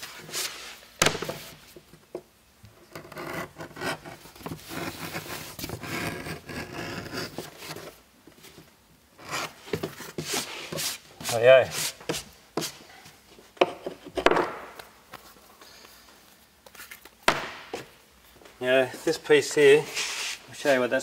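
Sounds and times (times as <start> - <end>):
edge beveller scraping leather: 2.9 - 7.8, 9.2 - 12.8.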